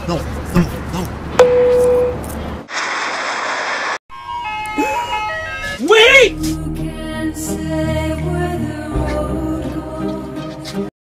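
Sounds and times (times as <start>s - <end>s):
loud even hiss: 2.7s - 4.0s
ice cream truck jingle: 4.1s - 6.3s.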